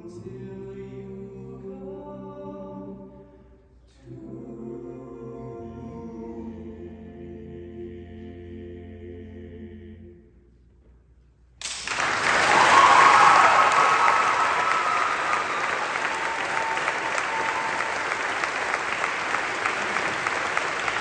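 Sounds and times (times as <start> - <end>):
audience applause: 11.6 - 21.0.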